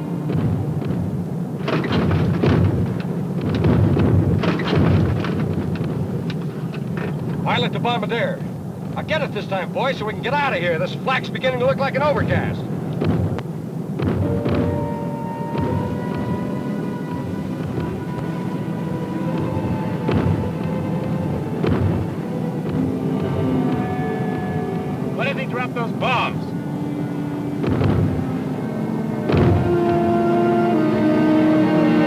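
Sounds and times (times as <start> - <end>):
aircraft engine drone: 0.0 - 32.0
dramatic orchestral music: 14.2 - 32.0.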